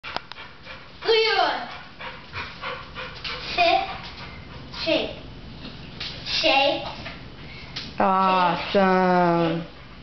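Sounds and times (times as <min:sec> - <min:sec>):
child speaking: 0:01.0 - 0:01.8, 0:03.4 - 0:04.0, 0:04.8 - 0:05.2, 0:06.3 - 0:07.0, 0:08.0 - 0:09.6.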